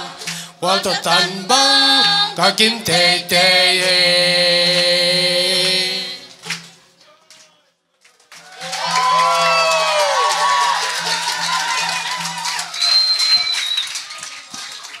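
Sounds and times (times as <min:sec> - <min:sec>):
audience applause and cheering: 0:08.1 - 0:15.0
high whistle: 0:11.7 - 0:14.0.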